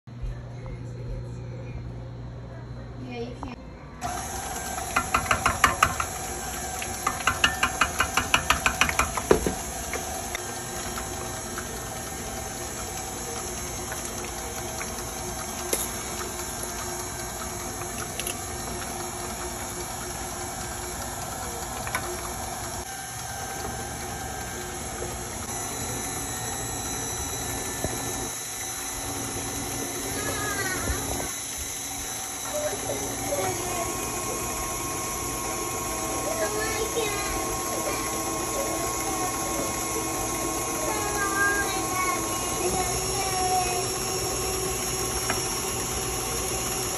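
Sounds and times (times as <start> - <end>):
stand mixer running: 4.0 - 46.9.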